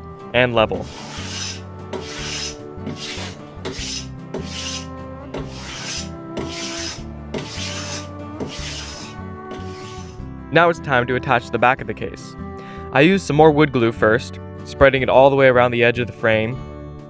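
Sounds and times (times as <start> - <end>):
soft background music: 0.0 - 17.0
block plane shaving wood: 0.7 - 10.2.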